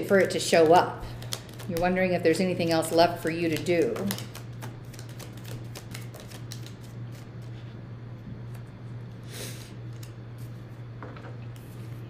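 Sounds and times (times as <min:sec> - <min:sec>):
cards being shuffled: 0:00.0 - 0:02.0, 0:02.6 - 0:07.7, 0:09.9 - 0:10.5.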